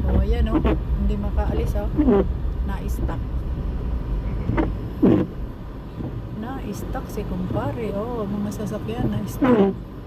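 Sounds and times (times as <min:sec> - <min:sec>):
car engine and tyre noise: 0:00.0 - 0:10.0.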